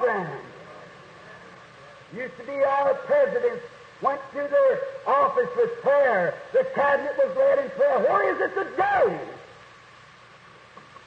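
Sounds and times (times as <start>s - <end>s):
man preaching: 0.0s - 0.6s, 2.1s - 9.5s
old recording hiss: 0.0s - 11.0s.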